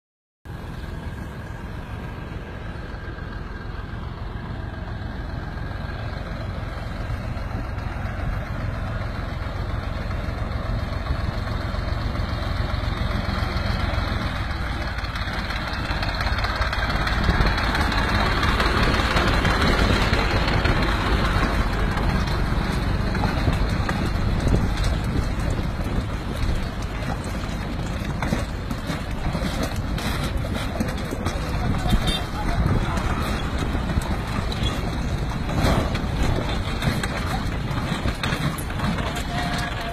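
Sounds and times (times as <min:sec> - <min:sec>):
train rumbling on track: 0:00.5 - 0:39.9.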